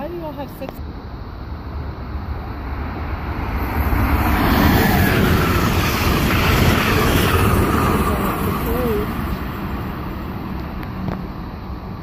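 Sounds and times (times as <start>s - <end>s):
electric train passing at speed: 0.0s - 12.0s.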